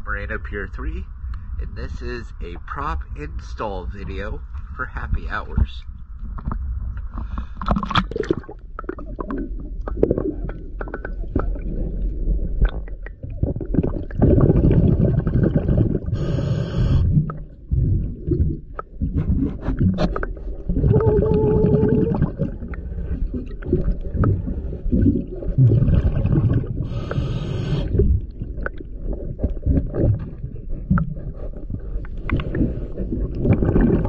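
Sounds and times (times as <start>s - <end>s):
diver exhaling bubbles: 6.4s - 34.0s
regulator inhale hiss: 16.2s - 17.2s, 26.9s - 28.0s.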